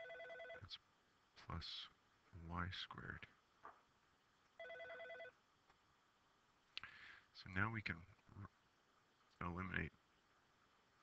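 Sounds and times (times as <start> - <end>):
telephone electronic trill ring: 0.0 - 0.6, 4.6 - 5.3.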